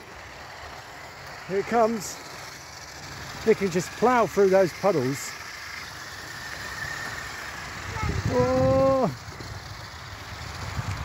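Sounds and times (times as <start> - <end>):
small electric motor whining: 0.0 - 11.0.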